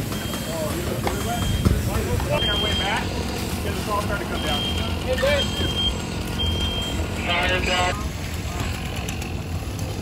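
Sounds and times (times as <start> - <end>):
low engine rumble: 0.0 - 10.0
scattered voices: 0.0 - 10.0
high electronic beeps: 0.1 - 3.1, 4.2 - 7.9.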